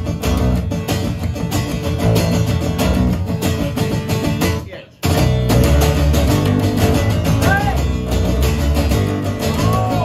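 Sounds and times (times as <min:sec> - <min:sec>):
acoustic bass guitar: 0:00.0 - 0:10.0
acoustic guitar strummed: 0:00.0 - 0:10.0.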